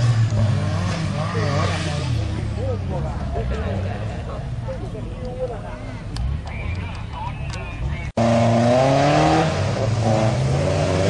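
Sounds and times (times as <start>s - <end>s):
off-road engine revving: 0.0s - 4.8s, 5.5s - 11.0s.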